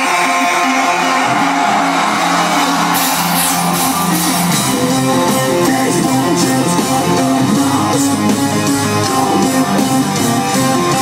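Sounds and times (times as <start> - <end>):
distorted electric guitar riff: 0.0 - 11.0
drums: 0.0 - 11.0.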